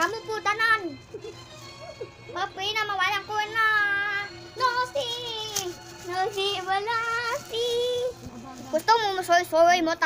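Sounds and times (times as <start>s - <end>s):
girl singing: 2.4s - 8.9s.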